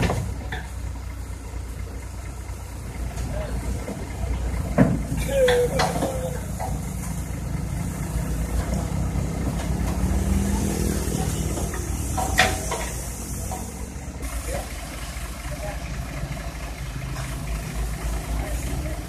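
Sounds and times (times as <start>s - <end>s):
excavator diesel engine under load: 0.0s - 19.0s.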